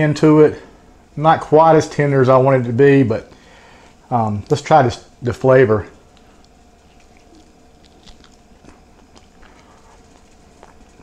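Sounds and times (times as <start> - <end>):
faint steady hum: 0.0 - 11.0
wet chewing clicks: 6.0 - 11.0.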